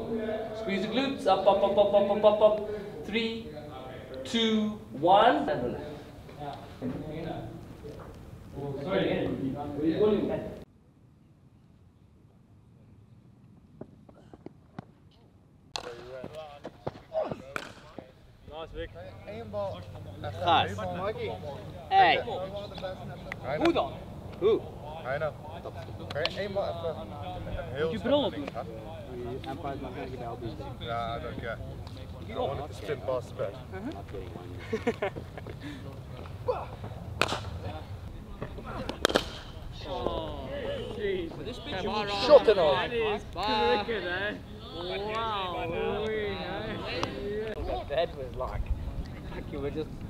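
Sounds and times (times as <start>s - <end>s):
cricket bats striking balls: 15.7s - 18.1s, 36.2s - 37.8s, 38.4s - 40.2s
people talking: 15.8s - 50.0s.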